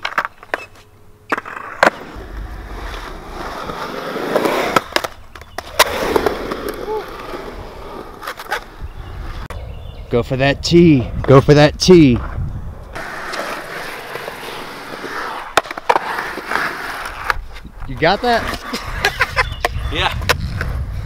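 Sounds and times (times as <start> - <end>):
skateboard clacking on concrete: 0.0 - 2.1, 2.9 - 7.1, 13.0 - 17.4
skateboard wheels rolling on concrete: 0.0 - 21.0.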